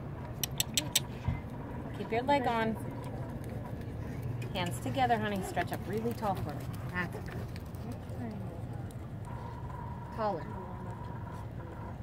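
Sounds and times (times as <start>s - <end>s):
horse hoofbeats on dirt: 2.7s - 8.6s.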